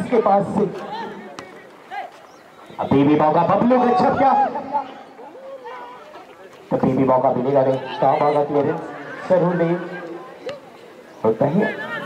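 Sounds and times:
faint outdoor ground noise: 0:00.0 - 0:12.0
man commentating: 0:02.7 - 0:05.0.

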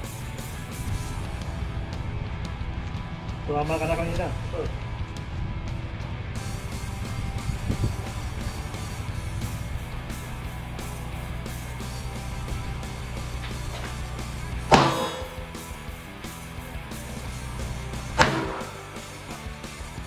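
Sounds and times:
guitar music: 0:00.0 - 0:20.0
gunshots: 0:14.7 - 0:15.6, 0:18.2 - 0:19.2.

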